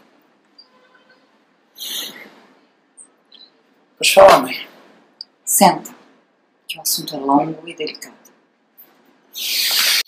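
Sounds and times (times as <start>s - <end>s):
loud breathy hiss: 1.8s - 2.4s, 9.3s - 10.0s.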